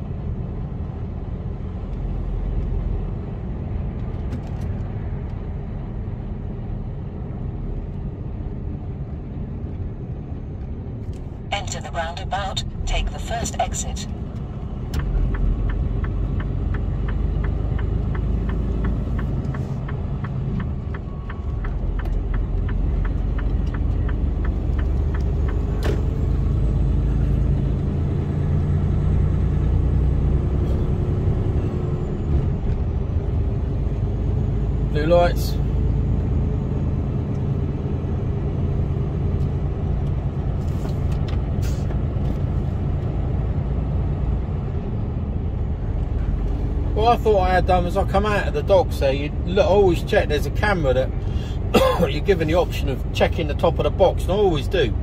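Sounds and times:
truck diesel engine droning: 11.4s - 55.0s.

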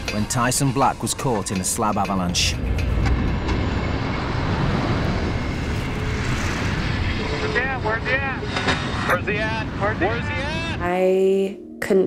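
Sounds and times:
avalanche deep rumbling rush: 0.0s - 10.9s.

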